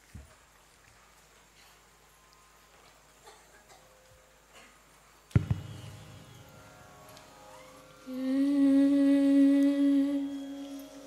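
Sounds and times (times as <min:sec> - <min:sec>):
ringing strike: 0:05.3 - 0:08.1
person humming a note: 0:08.0 - 0:11.0.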